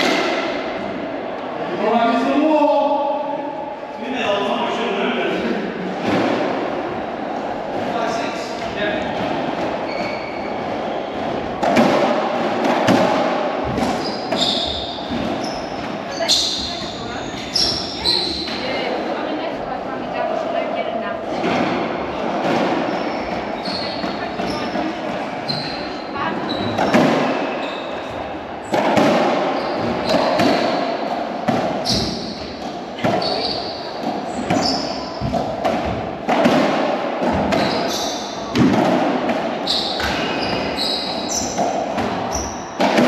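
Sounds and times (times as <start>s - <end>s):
racquetball hitting racquets and walls: 0.0s - 1.4s, 2.4s - 43.0s
shoes squeaking on wooden floor: 9.7s - 11.2s, 13.6s - 18.9s, 22.7s - 28.8s, 29.5s - 31.0s, 31.8s - 35.5s, 37.3s - 38.6s, 39.6s - 42.8s.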